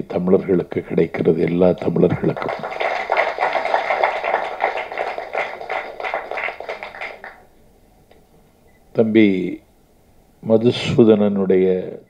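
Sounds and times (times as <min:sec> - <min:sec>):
audience applauding: 0:02.2 - 0:07.4.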